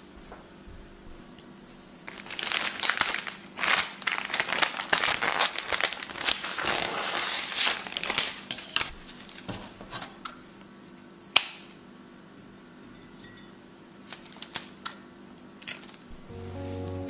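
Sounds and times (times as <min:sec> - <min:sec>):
cellophane crinkling: 0:02.0 - 0:08.9.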